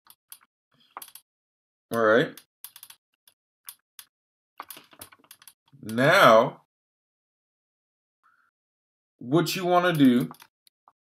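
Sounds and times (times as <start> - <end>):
computer keyboard keystrokes: 2.7 - 3.0, 10.1 - 10.5.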